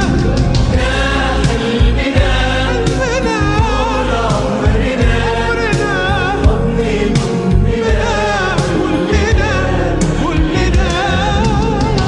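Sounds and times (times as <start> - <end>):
pop band backing: 0.0 - 12.0
singing with vibrato: 0.8 - 12.0.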